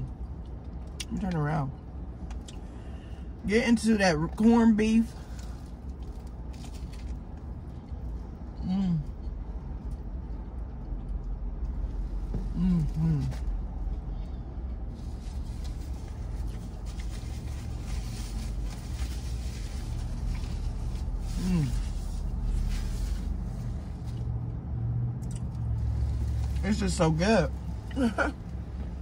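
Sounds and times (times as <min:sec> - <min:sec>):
low vehicle cab rumble: 0:00.0 - 0:29.0
woman humming with enjoyment: 0:12.5 - 0:13.4.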